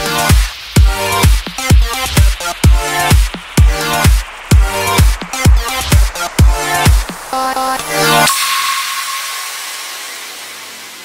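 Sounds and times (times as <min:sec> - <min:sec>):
white noise hiss: 0:00.0 - 0:11.0.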